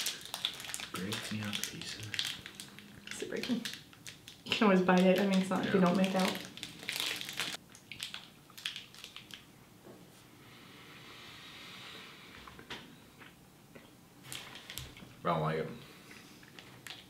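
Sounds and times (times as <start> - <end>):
small crackles and clicks: 0.0 - 9.5, 14.3 - 15.0, 16.4 - 17.0.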